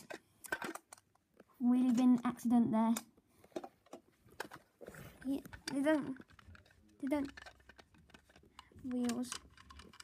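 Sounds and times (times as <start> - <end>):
plastic toy bins clicking: 0.0 - 10.0.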